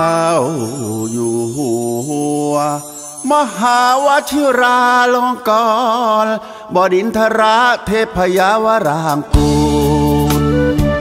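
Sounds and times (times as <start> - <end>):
person singing long held notes: 9.1 - 10.8
musical accompaniment: 9.3 - 11.0.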